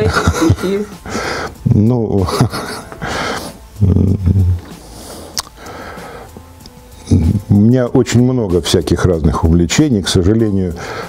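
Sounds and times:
man humming in hesitation: 0:03.5 - 0:04.8.

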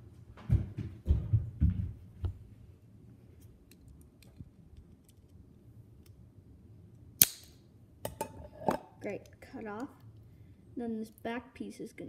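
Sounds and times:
sharp plastic snap: 0:07.2 - 0:07.6.

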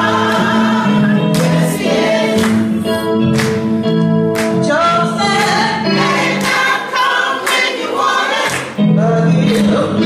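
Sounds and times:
choir singing: 0:00.0 - 0:03.0, 0:04.9 - 0:10.0.

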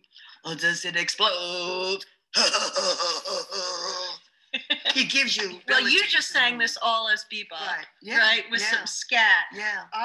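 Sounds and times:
woman vocalizing wordlessly: 0:04.6 - 0:09.7
jazz-style sung poem: 0:08.1 - 0:08.9.

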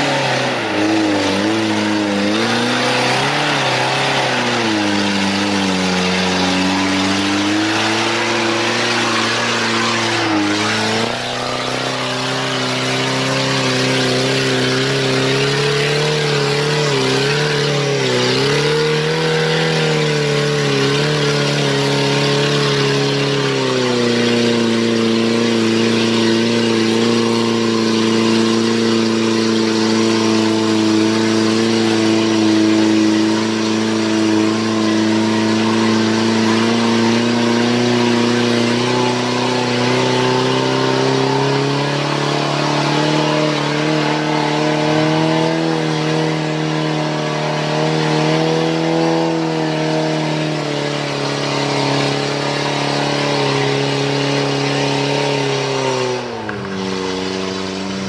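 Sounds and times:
off-road vehicle engine revving: 0:00.0 - 0:58.0.

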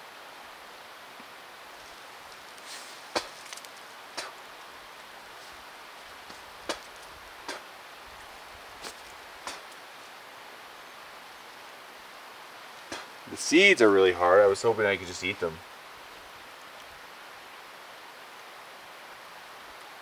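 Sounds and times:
steady outdoor hiss: 0:00.0 - 0:20.0.

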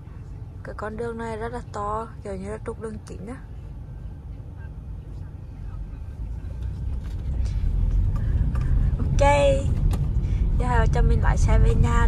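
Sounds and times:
car engine and tyre rumble: 0:00.0 - 0:12.0.

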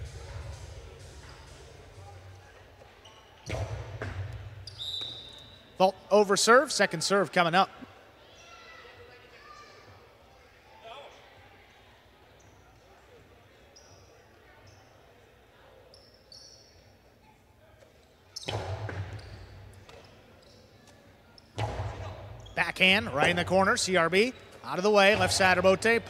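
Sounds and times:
faint murmur of voices: 0:07.7 - 0:22.3.

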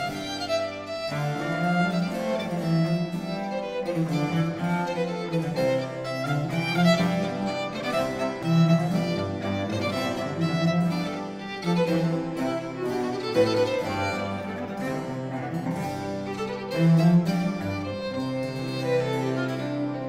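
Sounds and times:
baroque chamber ensemble playing: 0:00.0 - 0:20.0.

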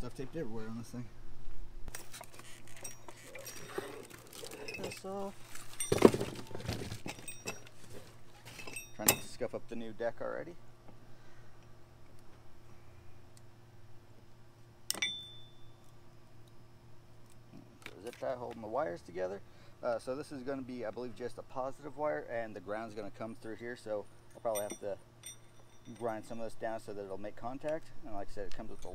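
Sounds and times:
tape rustling: 0:02.0 - 0:08.6
high-pitched metallic clink: 0:08.5 - 0:09.4, 0:14.9 - 0:15.9, 0:24.3 - 0:26.5.

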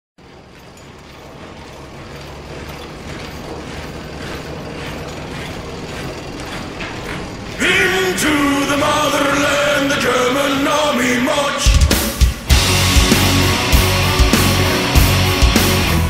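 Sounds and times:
mechanical rattling and clanking: 0:00.2 - 0:11.0
low hum: 0:00.2 - 0:16.0.

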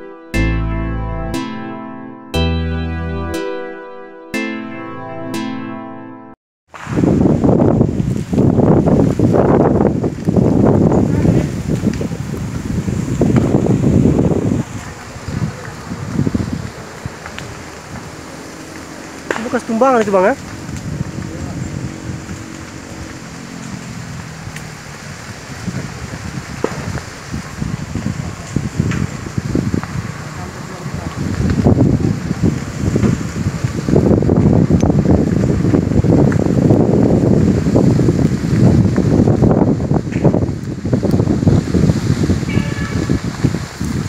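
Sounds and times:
burning brush crackling: 0:06.7 - 0:44.0
wind buffeting microphone: 0:06.8 - 0:44.0.

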